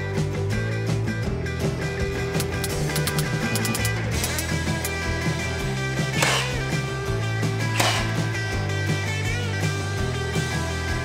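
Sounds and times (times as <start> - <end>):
rock music with guitar: 0.0 - 11.0
nail gun shots: 2.4 - 5.0, 6.1 - 6.8, 7.7 - 8.4.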